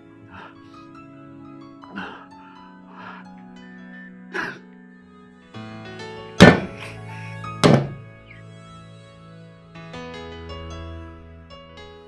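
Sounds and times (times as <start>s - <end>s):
soft background music: 0.0s - 12.0s
fist banging on a table: 6.4s - 6.8s, 7.6s - 8.0s.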